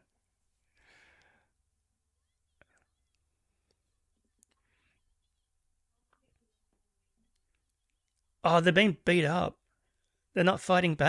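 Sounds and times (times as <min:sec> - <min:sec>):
faint short breath: 0:00.7 - 0:01.6.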